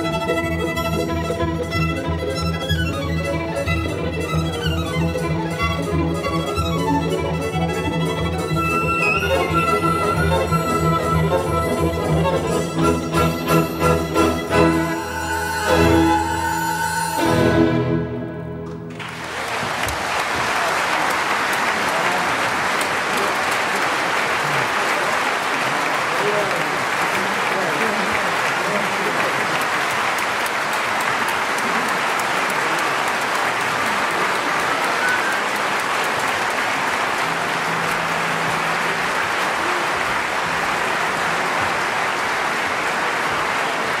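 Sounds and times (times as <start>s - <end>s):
audience applauding: 1.6s - 17.4s, 18.6s - 44.0s
voices among clapping: 19.0s - 44.0s.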